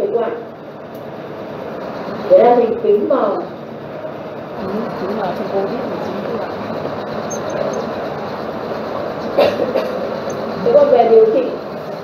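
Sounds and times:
faint voices: 1.6s - 12.0s.

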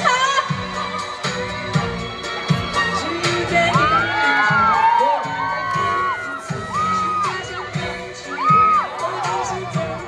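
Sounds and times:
live pop music with steady beat: 0.0s - 10.0s
audience cheering and whooping: 2.8s - 10.0s.

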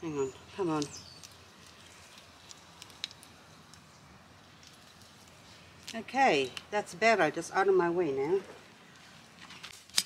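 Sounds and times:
twigs and leaves rustling: 0.4s - 6.7s.

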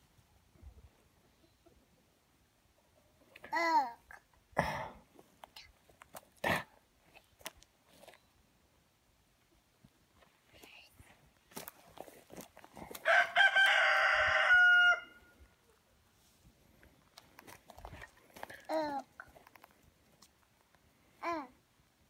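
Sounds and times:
faint rustles and clicks: 5.1s - 6.4s, 7.0s - 8.4s, 9.8s - 13.1s, 16.1s - 21.3s
rooster crowing: 13.0s - 15.4s.

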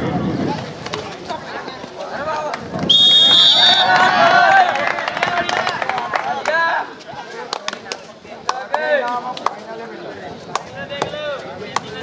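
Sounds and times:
players shouting calls: 2.2s - 7.0s
sharp claps and slaps: 7.5s - 9.6s, 10.5s - 12.0s.

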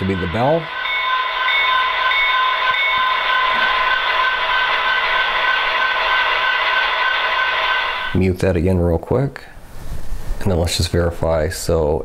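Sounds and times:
model locomotive bell ringing: 0.0s - 8.4s.

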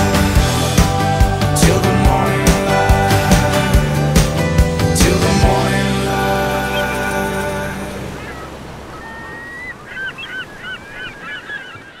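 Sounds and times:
surf hiss: 0.0s - 11.4s
birds calling: 0.0s - 12.0s.

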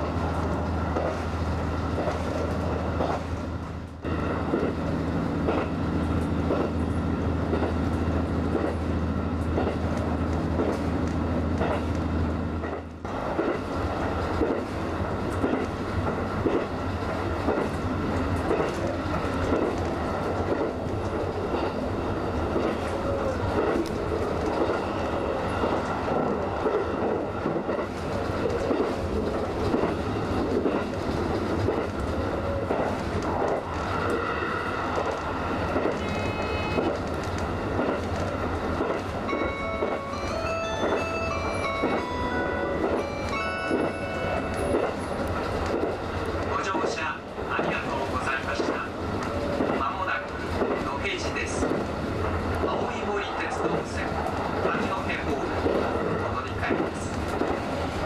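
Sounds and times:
train running along track: 0.0s - 58.0s
ringing tones: 39.3s - 45.1s.

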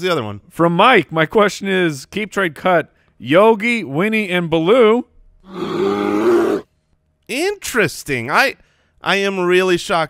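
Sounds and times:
bear growling: 5.4s - 6.7s.

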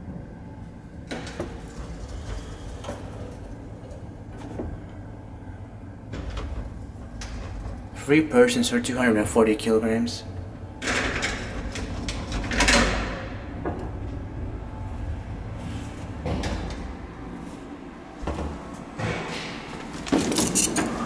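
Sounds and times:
lift machinery low rumble: 0.0s - 20.1s.

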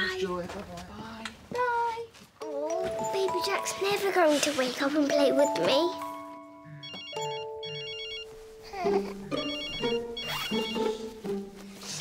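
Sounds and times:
telephone ringing: 6.7s - 8.7s, 9.3s - 11.0s.

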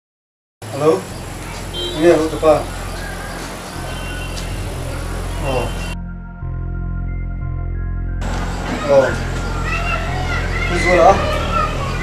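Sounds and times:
voices speaking: 0.7s - 6.0s, 8.3s - 12.0s.

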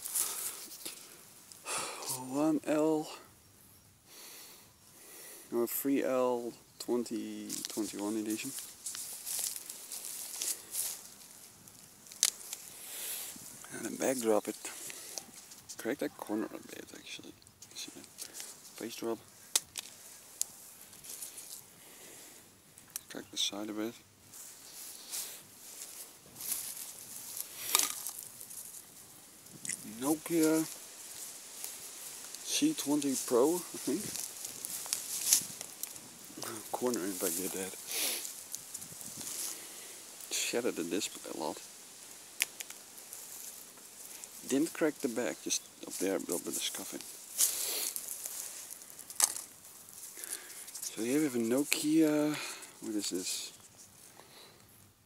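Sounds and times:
dry grass and leaves rustling: 0.0s - 55.0s
phone dropping onto leaves: 25.8s - 28.8s, 29.4s - 39.6s.

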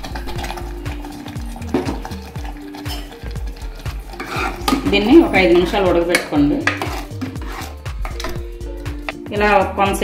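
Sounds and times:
metal spoon scraping pot: 0.0s - 8.2s
background music with beat: 0.0s - 10.0s.

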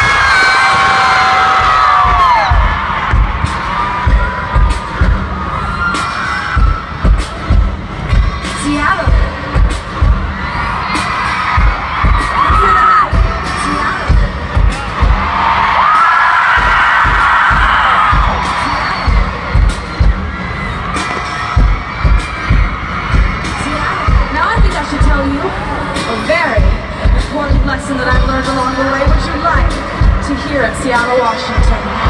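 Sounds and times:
fans screaming and cheering: 0.0s - 32.0s
heavy bass drum beat: 0.0s - 32.0s.

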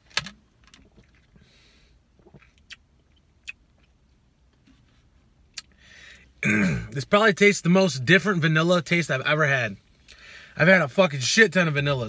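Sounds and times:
person sipping a drink: 2.2s - 2.8s
lip smacks and clicks: 2.2s - 4.0s, 5.5s - 5.8s
soft breathy hiss: 9.9s - 10.6s.

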